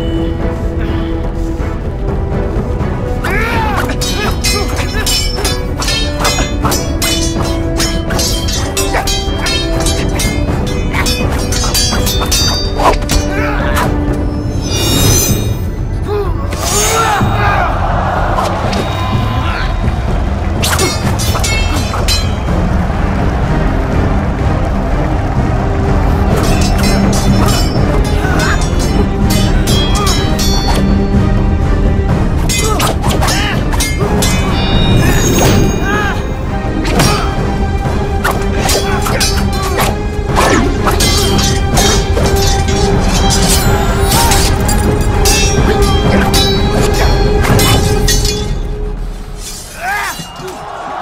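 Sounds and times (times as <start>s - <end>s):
dramatic film score: 0.0s - 51.0s
swords hitting and swishing: 3.3s - 13.9s, 20.6s - 22.4s, 32.4s - 35.6s, 38.3s - 48.5s.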